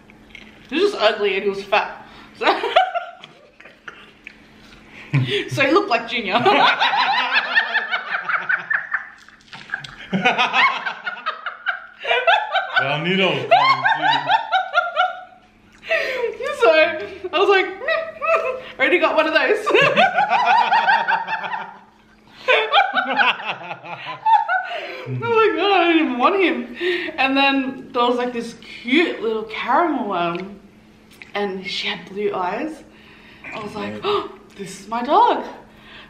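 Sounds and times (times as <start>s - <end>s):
woman and man laughing: 6.4s - 15.3s, 19.7s - 25.6s.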